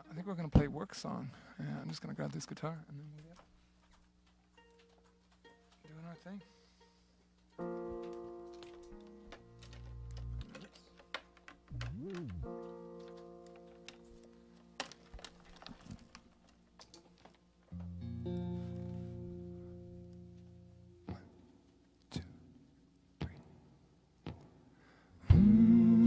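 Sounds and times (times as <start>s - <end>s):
fingers tapping guitar: 7.5s - 15.7s, 17.2s - 21.6s
guitar string pitch sliding: 11.7s - 12.6s
electric guitar chords strummed: 17.8s - 21.3s.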